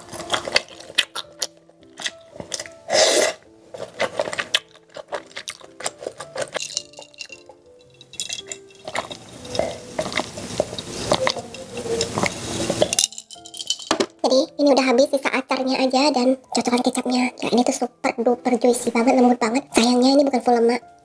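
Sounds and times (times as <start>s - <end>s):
soft background music: 0.0s - 21.0s
chewing clicks: 0.1s - 2.8s, 4.0s - 7.6s
chopsticks tapping on dishes: 5.1s - 14.2s.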